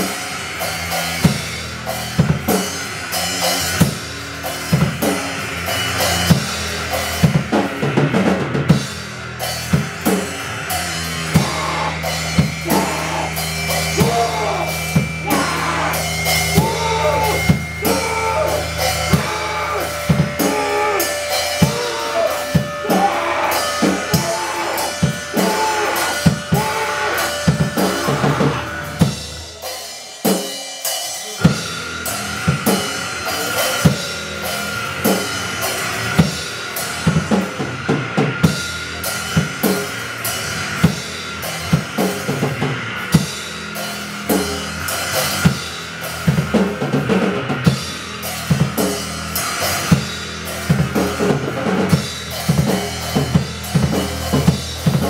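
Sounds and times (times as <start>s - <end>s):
fast drum-kit hits: 0.0s - 29.6s, 31.3s - 55.0s
punk noise band playing: 0.0s - 55.0s
high-pitched steady tone: 11.3s - 29.0s.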